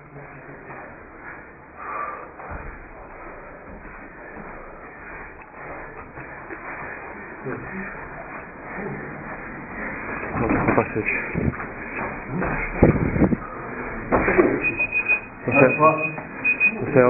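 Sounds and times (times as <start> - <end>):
indistinct voices: 0.0 - 17.0
murmur of room noise: 0.0 - 17.0.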